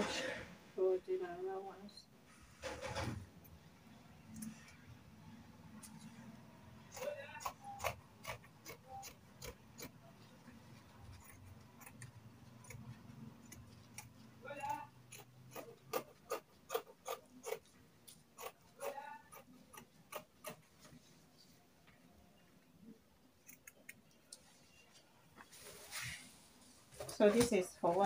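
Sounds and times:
scissors snipping fabric: 0:06.9 - 0:10.0, 0:11.0 - 0:20.7.

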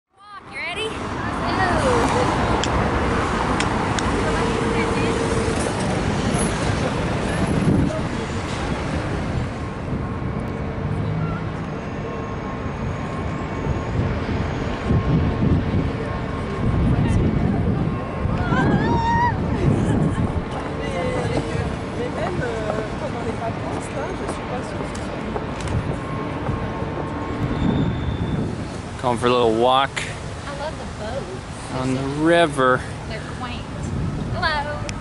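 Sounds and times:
cars and scooters driving past: 0:00.4 - 0:35.0.

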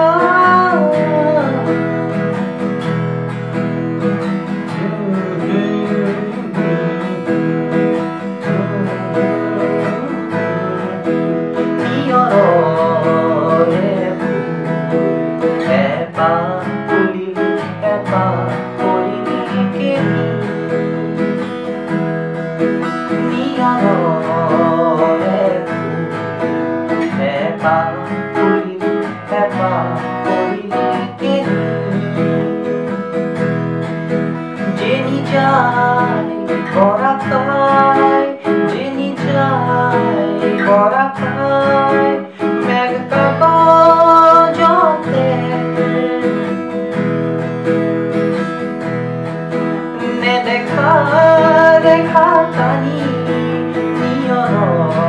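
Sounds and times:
man singing: 0:00.0 - 0:48.3, 0:49.5 - 0:55.0
acoustic guitar strumming: 0:00.0 - 0:55.0.

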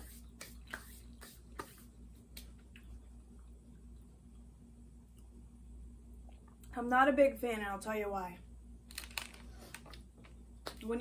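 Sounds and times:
faint low hum: 0:00.0 - 0:11.0
soft wet chewing: 0:00.2 - 0:05.4
mouth clicks and smacks: 0:00.3 - 0:03.5.

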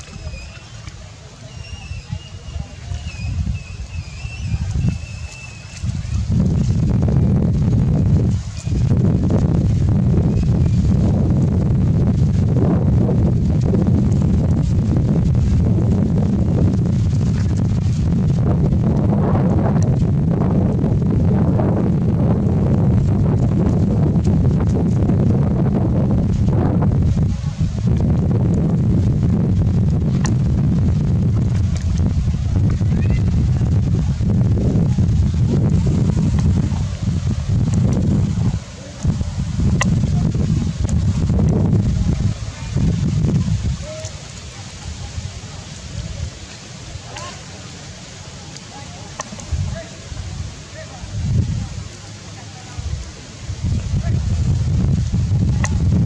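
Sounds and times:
wind buffeting microphone: 0:00.0 - 0:56.0
thin high-pitched wavering call: 0:00.2 - 0:05.8.

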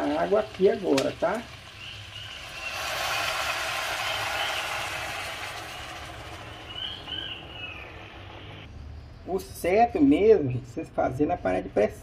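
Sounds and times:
water hissing on hot pot: 0:00.0 - 0:07.3.

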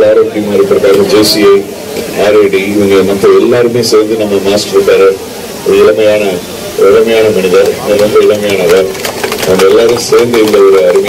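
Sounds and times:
man speaking over public address: 0:00.0 - 0:11.0.

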